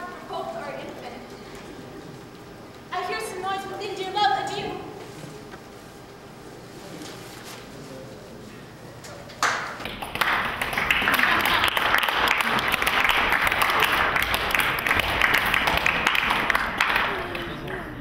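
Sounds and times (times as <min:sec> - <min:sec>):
voices: 0:00.0 - 0:05.8
crowd applause: 0:09.4 - 0:18.0.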